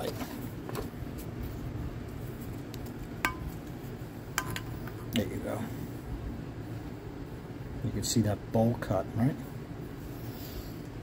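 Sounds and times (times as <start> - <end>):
steady low hum: 0.0 - 11.0
handling noises on metal: 3.2 - 5.0.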